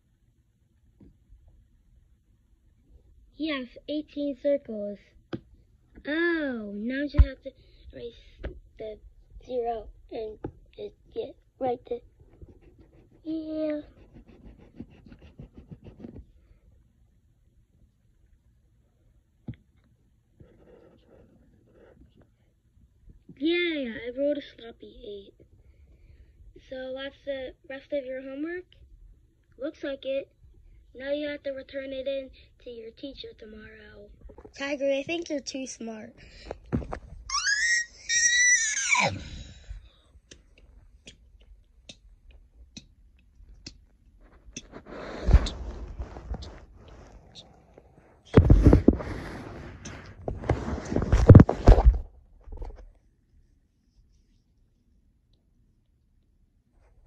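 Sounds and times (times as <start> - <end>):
eraser rubbing on paper: 12.5 - 16.2, 44.6 - 47.2
high-pitched squealing scream: 37.3 - 39.3.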